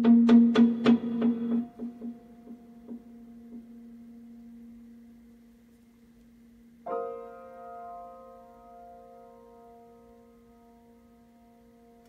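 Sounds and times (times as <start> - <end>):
prepared piano notes ringing: 0.0 - 6.1, 6.7 - 12.0.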